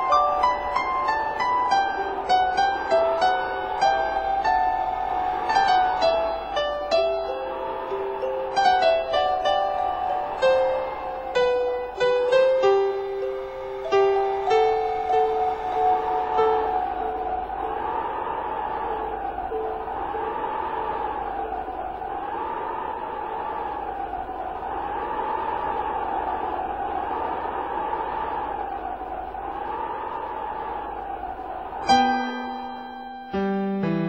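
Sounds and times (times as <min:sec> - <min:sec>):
wavering whine: 0:00.0 - 0:33.2.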